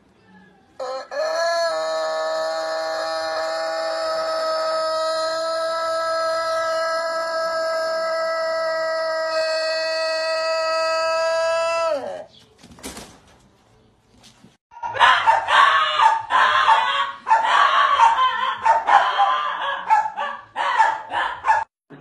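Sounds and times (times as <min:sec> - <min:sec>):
rooster crowing long held note: 0:00.8 - 0:12.1.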